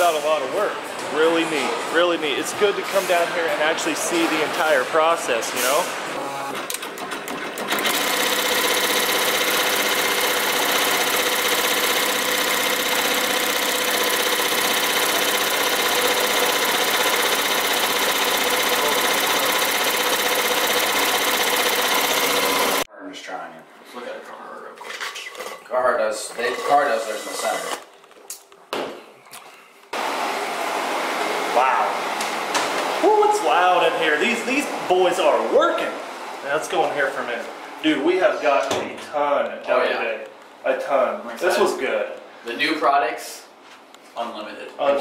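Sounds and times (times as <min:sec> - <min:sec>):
embroidery machine stitching: 0:06.7 - 0:22.9.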